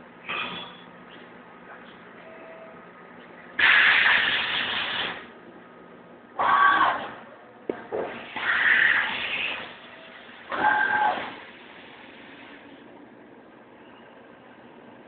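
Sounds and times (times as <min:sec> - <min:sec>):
faint machine hum: 0:00.0 - 0:15.0
loud hissing spray bursts: 0:03.6 - 0:05.3.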